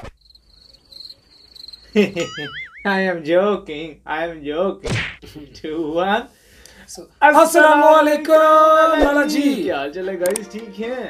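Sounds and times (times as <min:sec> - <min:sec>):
crickets chirping: 0:00.0 - 0:02.9.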